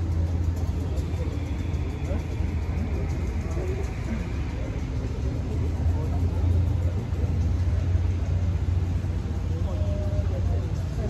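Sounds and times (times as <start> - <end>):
faint voices: 0.0 - 11.0
low rumble in a large hall: 0.0 - 11.0.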